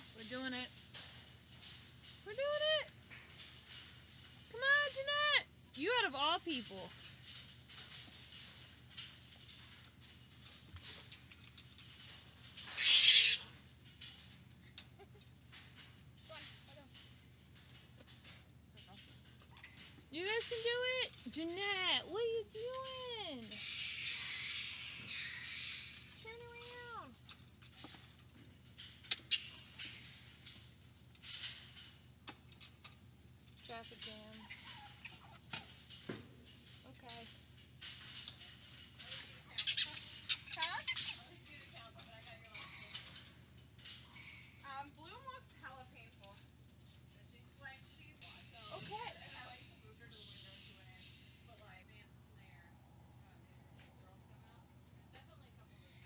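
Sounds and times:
fruit bat squawking: 0:12.8 - 0:13.5.

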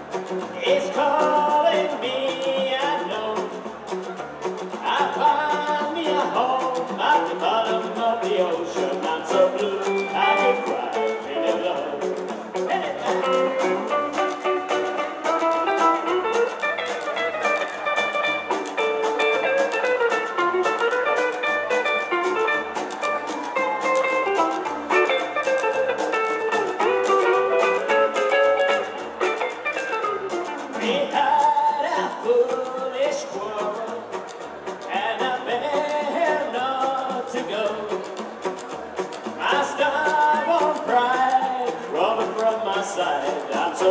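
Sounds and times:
electric guitar lead: 0:00.0 - 0:42.5
drums: 0:00.0 - 0:43.9
strummed acoustic guitar: 0:00.0 - 0:43.9
upright bass: 0:00.0 - 0:43.9.

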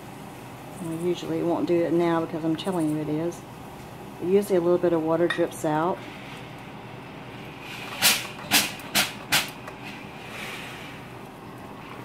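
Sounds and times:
steam iron spitting steam: 0:05.6 - 0:12.0.

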